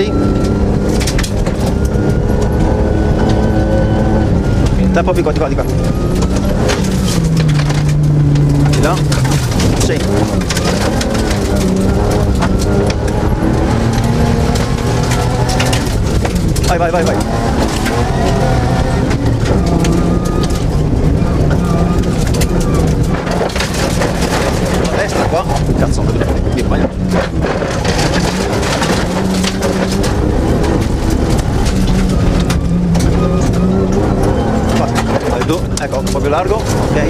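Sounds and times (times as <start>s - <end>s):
knocks and rattles: 0.0s - 37.0s
rally car engine running hard: 0.0s - 37.0s
tyres on gravel: 4.8s - 37.0s.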